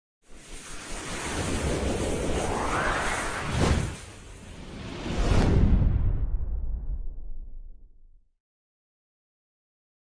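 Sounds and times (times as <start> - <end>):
whoosh sound effect: 0.5 - 6.6.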